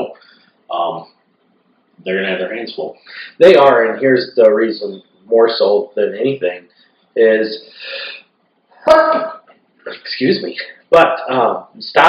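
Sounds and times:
man speaking: 0.0s - 1.2s, 2.0s - 12.0s.

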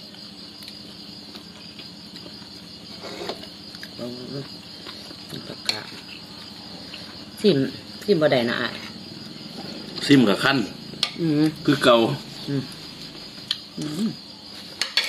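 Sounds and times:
crickets trilling: 0.0s - 15.0s.

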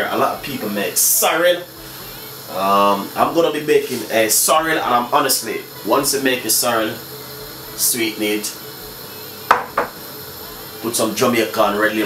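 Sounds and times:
glass bottle clinking: 9.5s - 10.0s
soft knock: 9.5s - 10.0s.

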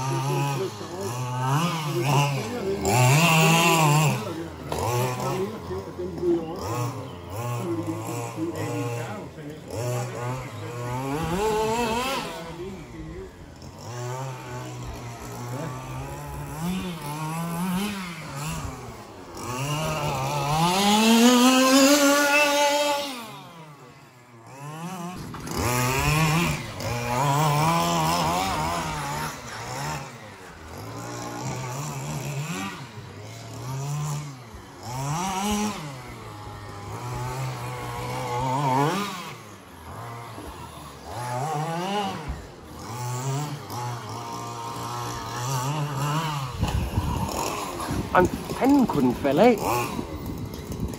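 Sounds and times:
two-stroke engine revving: 0.0s - 50.9s.

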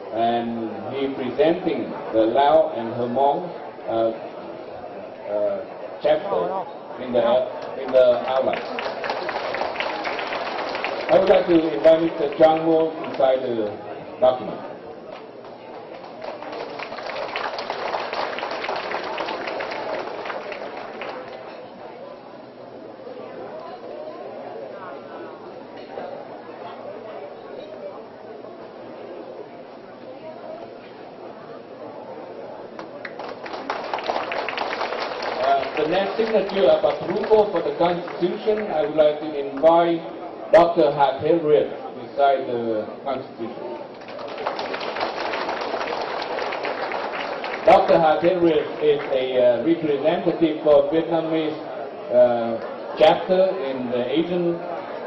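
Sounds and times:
people applauding: 7.6s - 13.8s, 15.1s - 21.6s, 32.8s - 39.5s, 43.9s - 49.8s.

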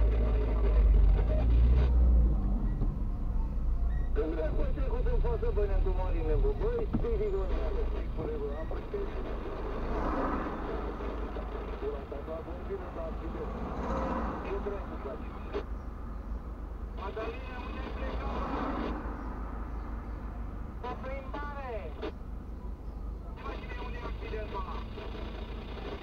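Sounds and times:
muffled voices: 0.0s - 2.1s, 2.8s - 15.8s, 16.9s - 19.1s, 20.8s - 26.0s
car engine rumble: 0.0s - 26.0s.

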